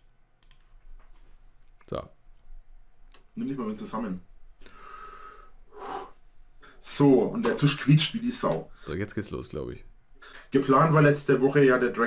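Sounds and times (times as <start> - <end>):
faint clicks: 0.0 - 3.3.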